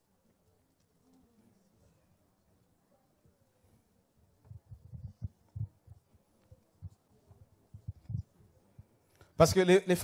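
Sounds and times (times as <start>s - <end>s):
faint low thuds: 4.4s - 6.1s, 6.8s - 8.3s.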